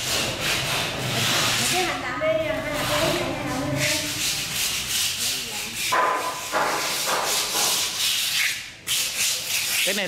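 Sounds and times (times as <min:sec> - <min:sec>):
hand rubbing rough cement: 0:00.0 - 0:02.0, 0:02.6 - 0:10.0.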